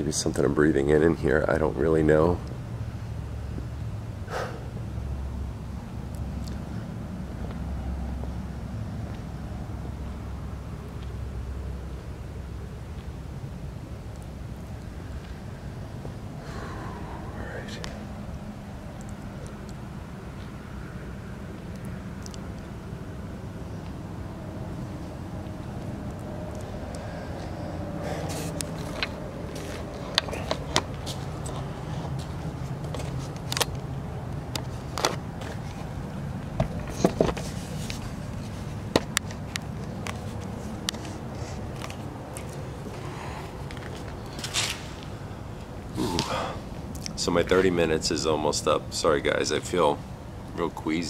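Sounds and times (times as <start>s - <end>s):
distant road traffic rumble: 0.0s - 51.0s.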